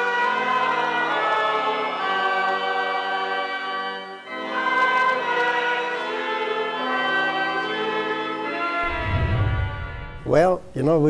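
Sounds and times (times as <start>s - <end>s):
choir singing slow chords: 0.0s - 10.3s.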